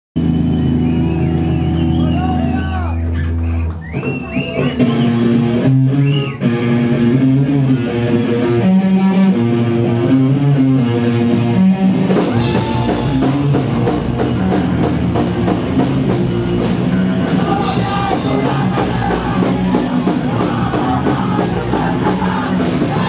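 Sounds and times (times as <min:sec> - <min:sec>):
bass guitar drone: 0:00.2 - 0:23.0
electric guitar riff: 0:04.4 - 0:23.0.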